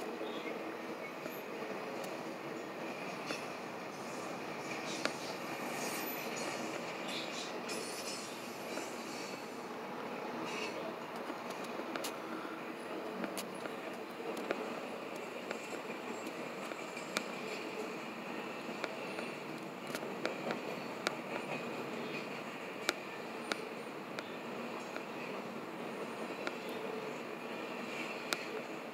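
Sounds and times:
train wheels rumbling on rail: 0.0 - 28.9.

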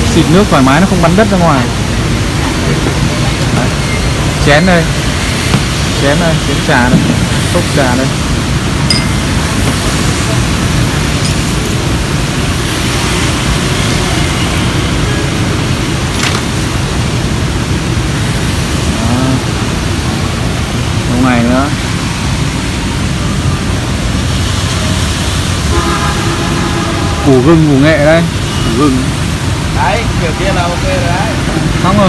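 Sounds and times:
heavy rain: 0.0 - 32.0.

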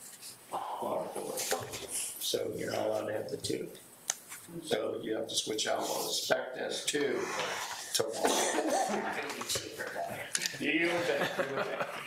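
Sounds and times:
people talking: 0.5 - 3.8, 4.5 - 12.0.

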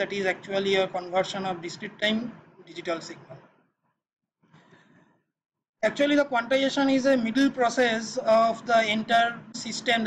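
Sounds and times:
man speaking: 0.0 - 3.4, 5.8 - 10.0.

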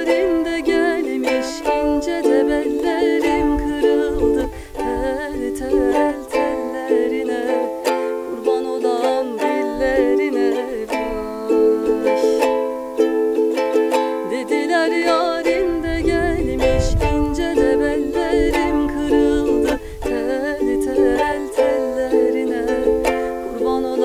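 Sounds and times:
ukulele strummed chords: 0.0 - 24.0
woman singing folk song: 0.0 - 24.0.

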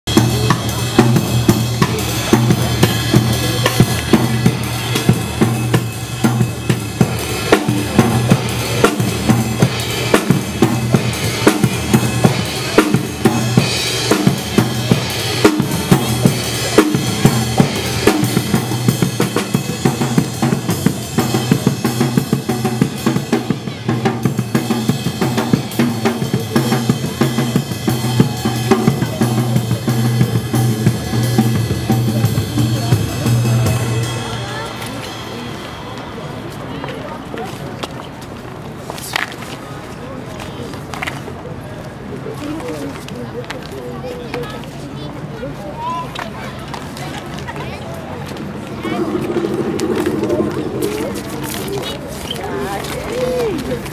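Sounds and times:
drum kit beat: 0.1 - 34.6, 48.8 - 52.1.

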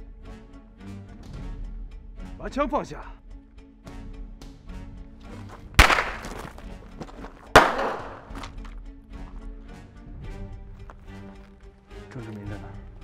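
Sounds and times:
dramatic background music: 0.0 - 13.0
pistol shots: 5.8 - 6.6, 7.5 - 8.5.

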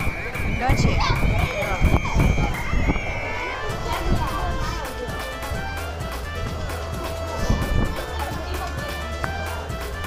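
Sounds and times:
steady high tone: 0.0 - 9.8
music with ticking beat: 0.0 - 10.0
voices talking over one another: 0.0 - 10.0.

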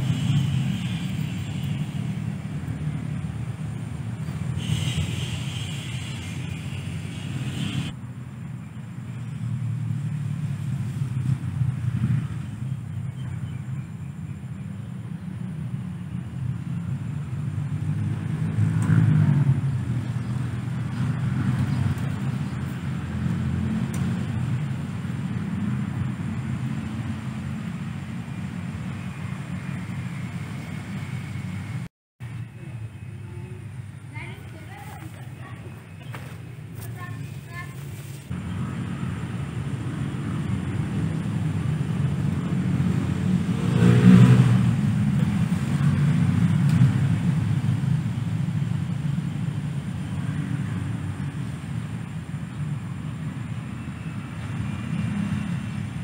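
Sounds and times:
distant traffic rumble: 0.0 - 56.0.

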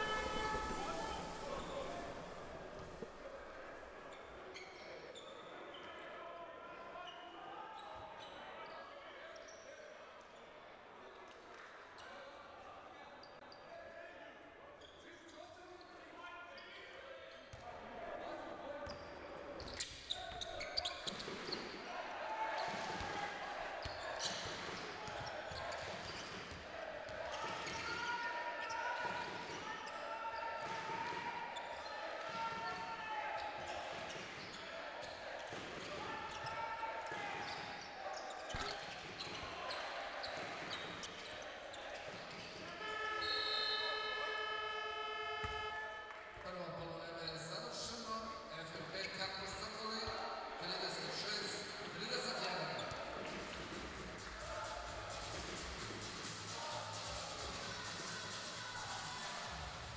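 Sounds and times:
voices calling out: 0.0 - 4.1.

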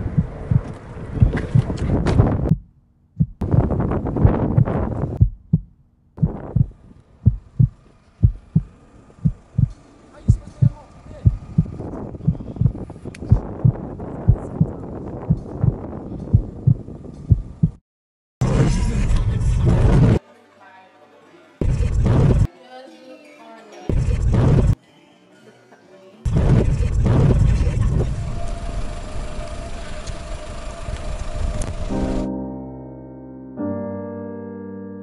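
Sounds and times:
low thumping heartbeat pulse: 0.0 - 9.7, 10.3 - 17.8.

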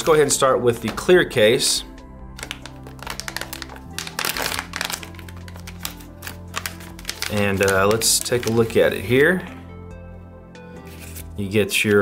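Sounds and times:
background music with held chords: 0.0 - 12.0
plastic pouch clicking and crinkling: 2.3 - 8.8.

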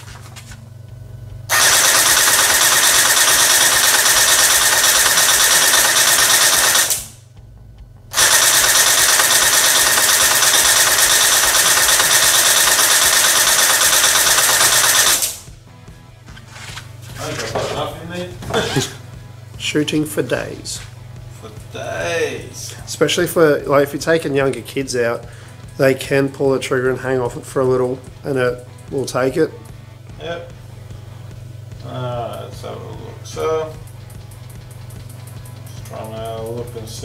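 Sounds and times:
gel blaster firing bursts: 1.5 - 7.2, 8.1 - 15.5.

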